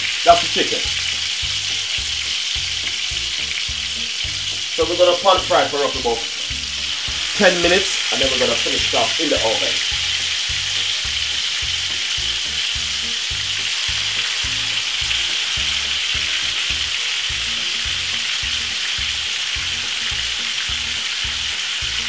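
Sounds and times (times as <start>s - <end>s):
chicken frying in oil: 0.0s - 22.0s.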